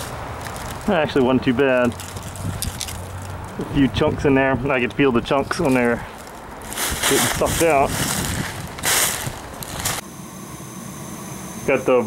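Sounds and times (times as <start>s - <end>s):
faint high whine: 10.0s - 12.0s.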